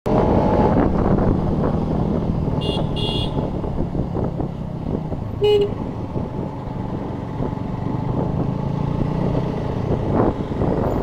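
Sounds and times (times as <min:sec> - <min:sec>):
high-pitched horn beeps: 0:02.6 - 0:03.4.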